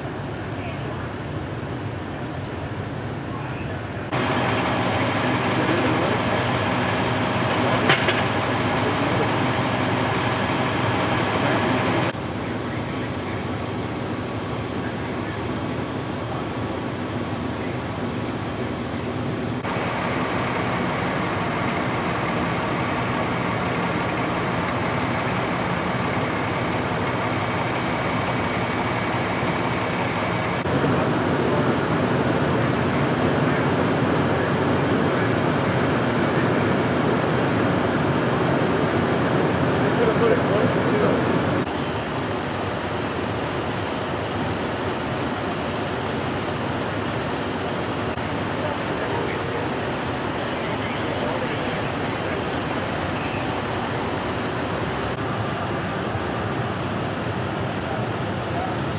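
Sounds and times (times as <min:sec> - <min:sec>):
fire truck engine running: 0:00.0 - 0:58.9.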